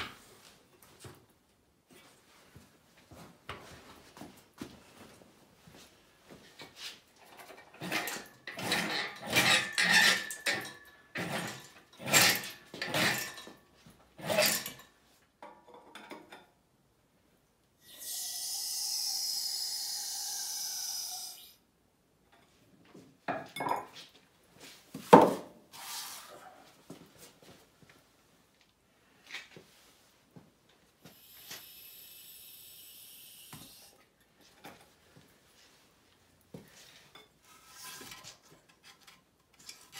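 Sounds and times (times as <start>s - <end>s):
metallic clanks and rattles: 7.2s - 13.6s.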